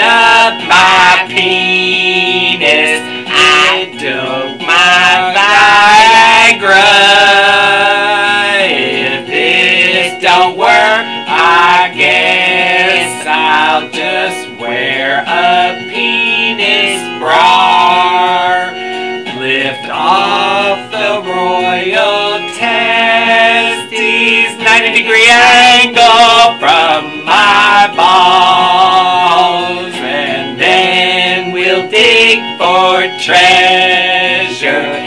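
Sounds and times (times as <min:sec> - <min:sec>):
instrumental backing: 0:00.0 - 0:35.0
two voices singing in unison: 0:00.0 - 0:35.0.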